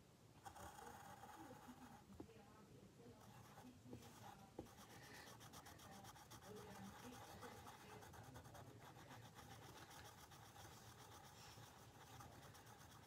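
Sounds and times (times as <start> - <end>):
pencil scratching on paper: 0.4 - 2.2, 3.2 - 13.0.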